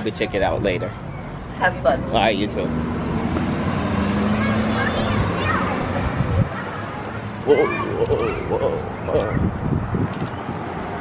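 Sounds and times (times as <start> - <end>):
traffic noise: 0.0 - 11.0
vehicle engine humming: 0.0 - 11.0.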